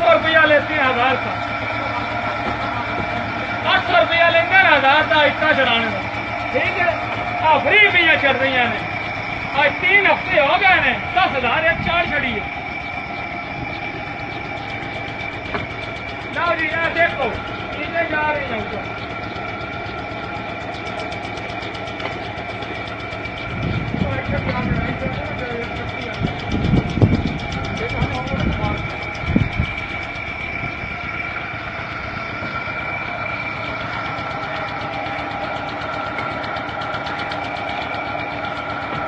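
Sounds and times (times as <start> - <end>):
conveyor mechanical clatter: 0.0 - 39.0
heavy low thumps: 23.4 - 33.1.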